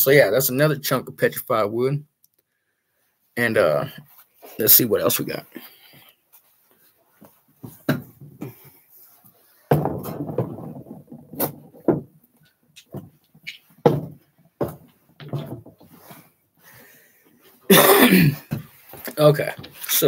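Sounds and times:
rocks knocking: 9.7s - 12.2s.

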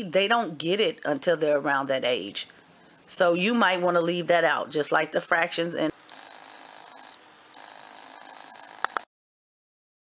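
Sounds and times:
recording hiss: 5.7s - 9.1s
faint high whine: 6.0s - 9.1s.

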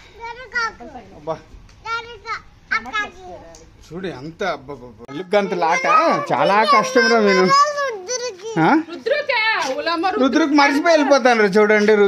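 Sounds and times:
young child's high voice: 0.0s - 0.9s, 1.8s - 3.5s, 5.1s - 8.8s.

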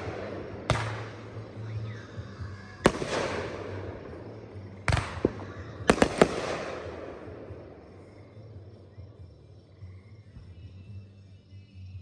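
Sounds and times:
fireworks bangs with echo: 0.0s - 1.6s, 2.8s - 7.7s.

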